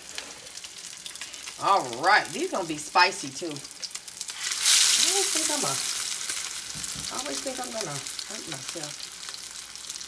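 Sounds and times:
patty sizzling in hot oil: 0.0 - 10.0.

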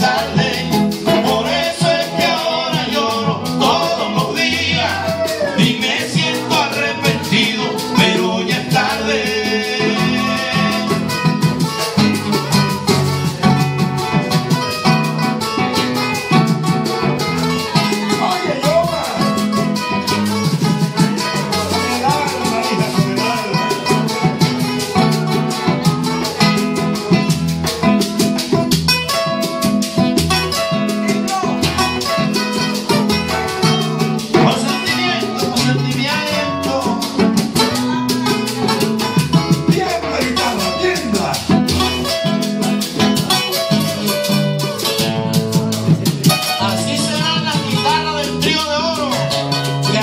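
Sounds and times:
acoustic guitars strumming: 0.0 - 50.0
guacharaca scraping: 0.0 - 50.0
hand drum: 0.0 - 50.0.

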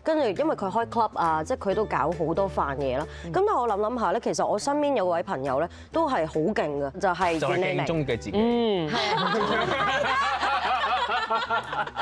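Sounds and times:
women laughing: 8.8 - 12.0.

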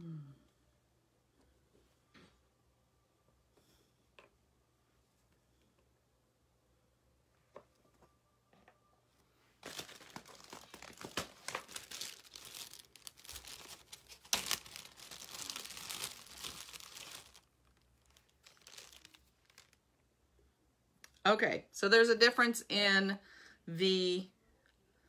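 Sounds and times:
plastic parts crinkling and rustling: 9.6 - 19.9.

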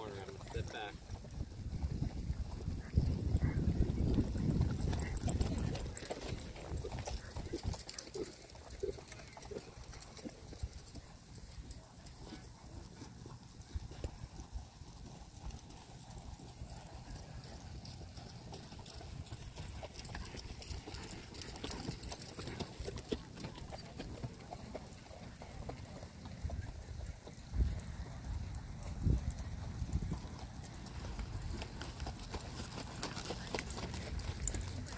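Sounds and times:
hooves clip-clopping on dirt: 0.0 - 34.9.

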